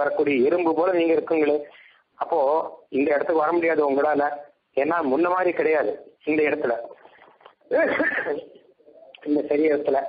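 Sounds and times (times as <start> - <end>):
man lecturing: 0.0 - 10.0.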